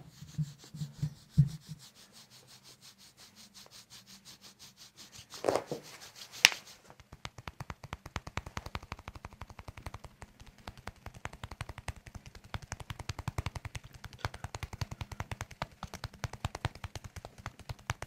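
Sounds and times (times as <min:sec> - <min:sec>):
hands patting on bare skin: 0:00.2 - 0:18.0.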